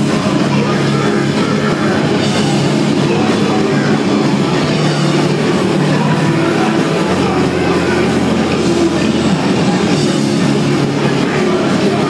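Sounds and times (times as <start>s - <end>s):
distorted electric guitar and bass: 0.0s - 12.0s.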